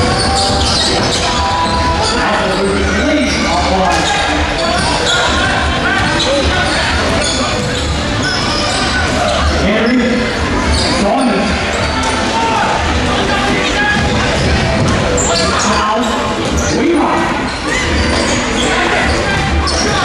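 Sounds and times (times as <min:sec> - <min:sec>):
voices and shouts: 0:00.0 - 0:20.0.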